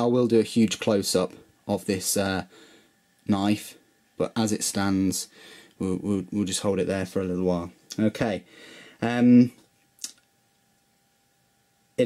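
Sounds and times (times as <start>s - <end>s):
faint high hum: 0.0s - 12.0s.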